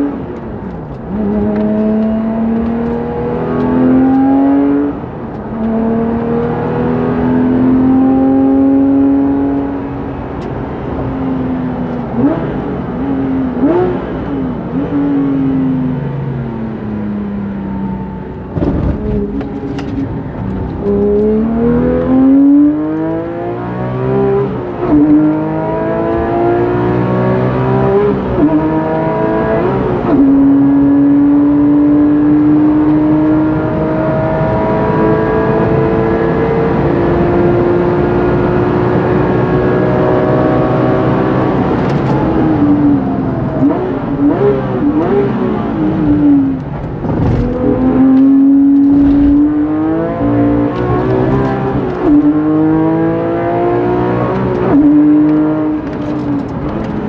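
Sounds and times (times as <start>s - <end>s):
car engine at full throttle: 0.0s - 57.0s
broad thump: 18.5s - 21.3s, 48.8s - 49.7s.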